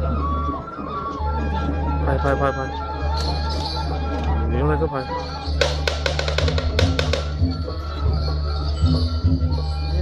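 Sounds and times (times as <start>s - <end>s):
low ringing gamelan tone: 5.1s - 10.0s
sharp drum and cymbal strokes: 5.6s - 7.6s.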